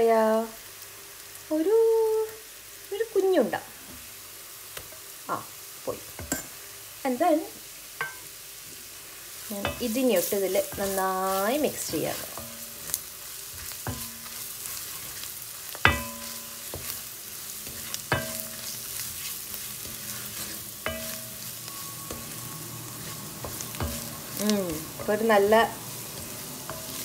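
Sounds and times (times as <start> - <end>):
food sizzling in a pot: 0.0 - 27.0
wooden spoon knocking a pot: 15.8 - 17.0.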